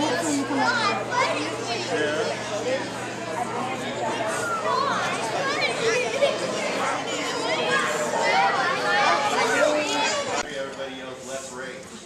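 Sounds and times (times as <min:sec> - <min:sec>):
children chattering: 0:00.0 - 0:10.5.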